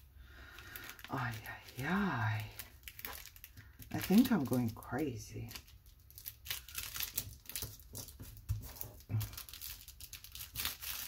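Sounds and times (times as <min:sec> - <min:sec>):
paper rustling and crinkling: 0:00.5 - 0:11.0.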